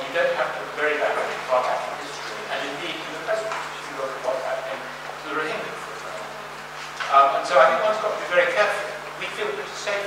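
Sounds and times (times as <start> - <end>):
person talking over a microphone: 0.0 - 10.0.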